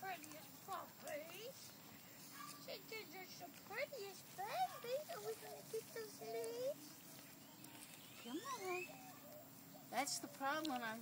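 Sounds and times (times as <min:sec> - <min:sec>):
puppies whimpering: 0:08.2 - 0:10.2.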